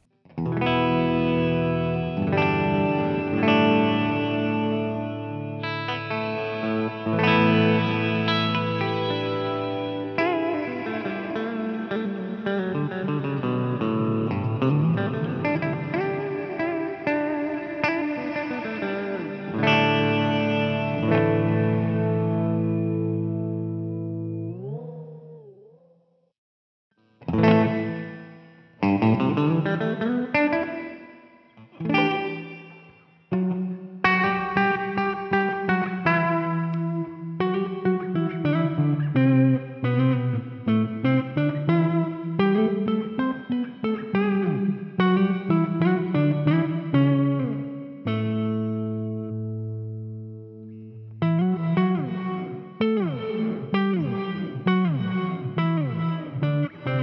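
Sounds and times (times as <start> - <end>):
electric guitar with reverb: 0.0 - 26.4, 27.0 - 57.0.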